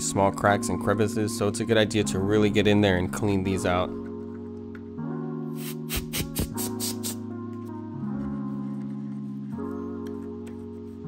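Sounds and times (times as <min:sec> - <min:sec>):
background music with held chords: 0:00.0 - 0:11.0
compressed air hissing bursts: 0:05.6 - 0:07.2.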